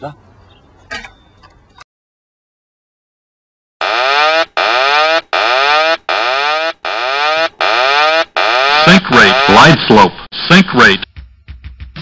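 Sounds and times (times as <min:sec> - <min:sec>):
electronic warning alarm tone: 0:03.8 - 0:09.9.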